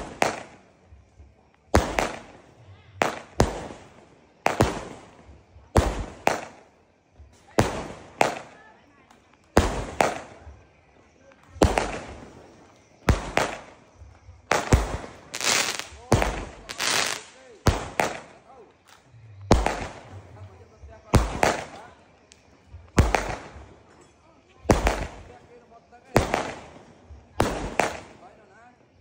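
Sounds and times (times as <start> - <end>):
fireworks bangs: 0.0 - 28.5.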